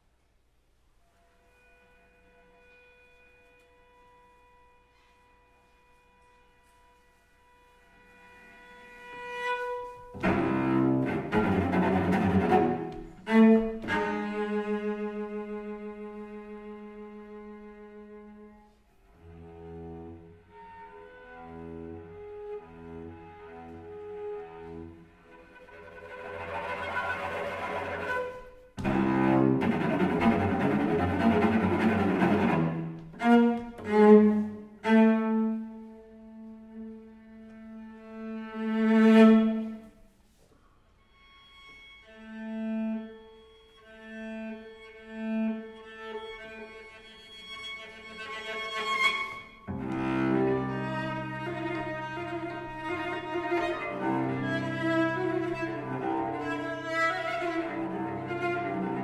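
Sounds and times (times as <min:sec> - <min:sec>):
solo cello playing: 0:01.2 - 0:59.0.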